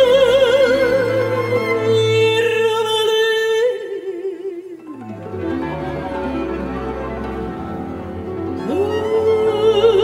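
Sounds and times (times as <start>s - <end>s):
opera singer with vibrato: 0.0s - 5.0s, 8.6s - 10.0s
string orchestra: 0.0s - 10.0s.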